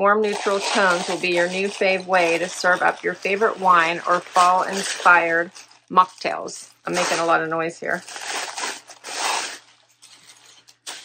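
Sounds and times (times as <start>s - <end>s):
packaging rustling and crinkling: 0.2s - 11.0s.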